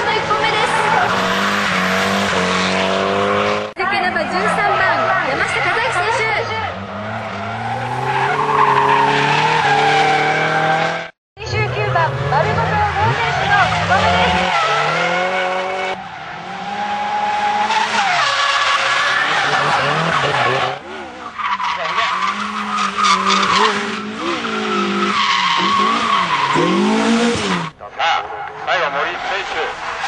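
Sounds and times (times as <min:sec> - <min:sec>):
car engines revving: 0:00.0 - 0:30.0.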